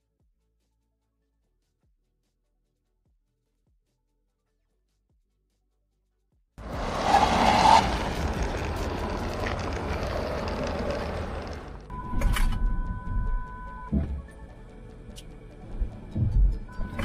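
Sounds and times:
car tyre and wind noise: 6.6 - 12.0.

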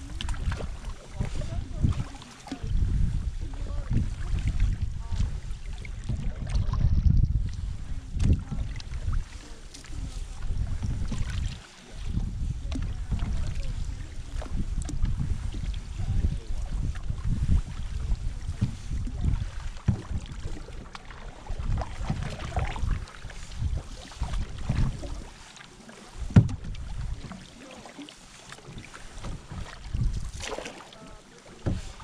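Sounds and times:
wind rumble on microphone: 0.0 - 25.4, 26.0 - 27.5, 28.6 - 32.0
water lapping against canoe: 0.0 - 32.0.

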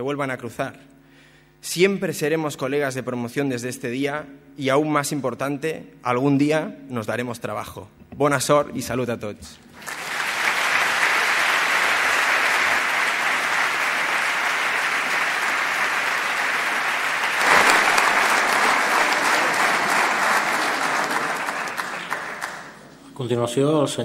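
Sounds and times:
crowd applauding: 9.8 - 23.0.

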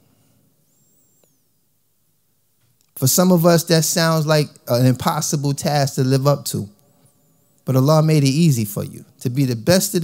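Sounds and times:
faint high squeak: 0.0 - 1.8.

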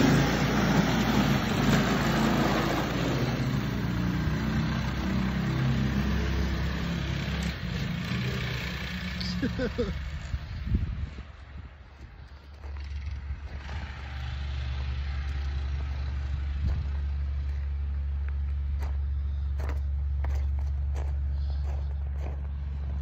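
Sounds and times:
sled engine running: 0.0 - 23.0.

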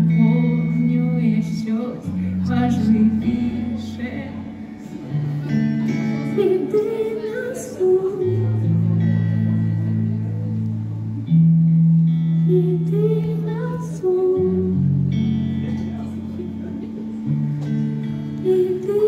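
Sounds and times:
woman singing into microphone: 0.0 - 4.9, 6.0 - 9.0, 12.4 - 15.0, 18.3 - 19.0
electric guitar: 0.0 - 19.0.

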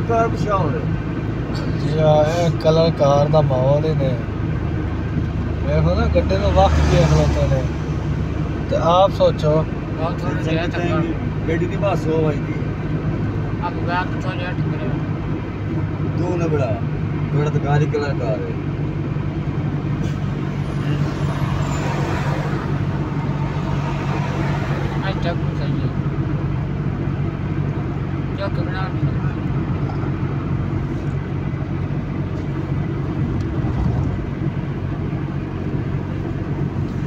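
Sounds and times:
car engine and drivetrain hum: 0.0 - 37.0
tyre noise on road: 29.0 - 37.0.

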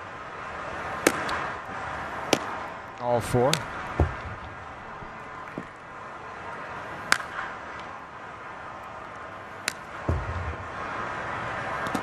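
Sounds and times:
baseball smacking into mitt: 1.0 - 1.4, 2.3 - 2.6, 7.1 - 7.9, 9.6 - 10.6, 11.8 - 12.0.

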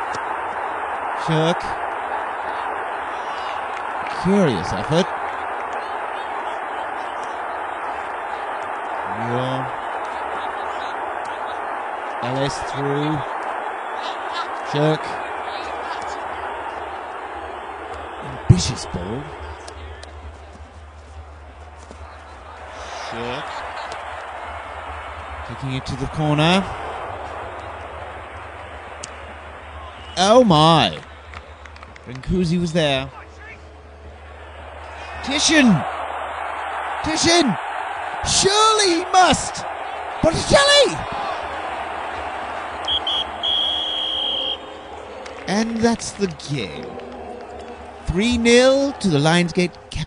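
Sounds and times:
referee's whistle blasts: 42.8 - 44.7.

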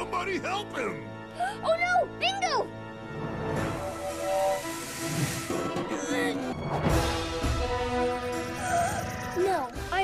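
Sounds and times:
monorail train rushing hiss: 3.9 - 5.7.

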